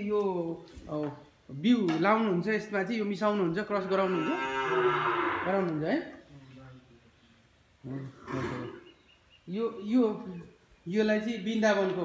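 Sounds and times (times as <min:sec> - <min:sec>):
cow mooing: 0:03.9 - 0:05.7, 0:08.2 - 0:08.9.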